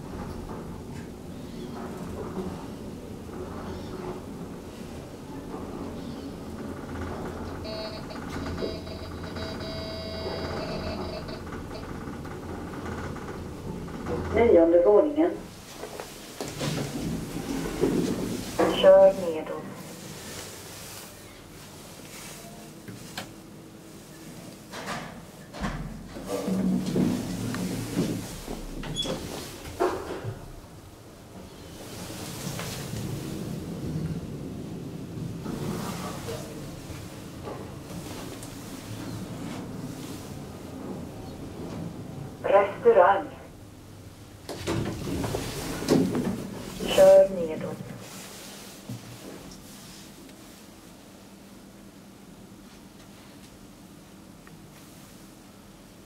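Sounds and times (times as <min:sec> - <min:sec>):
elevator ride hum: 0:00.0 - 0:56.0.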